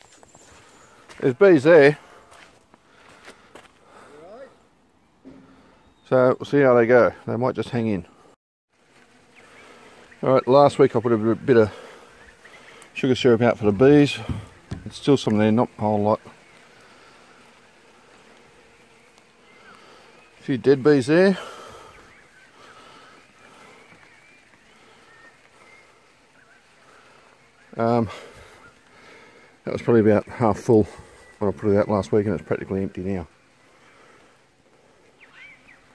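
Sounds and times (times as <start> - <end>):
honey bees buzzing: 0.0 - 35.9.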